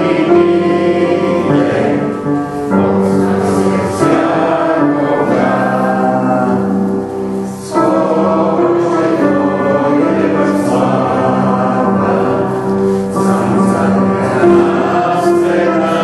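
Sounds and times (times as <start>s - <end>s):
choir singing a hymn: 0.0s - 16.0s.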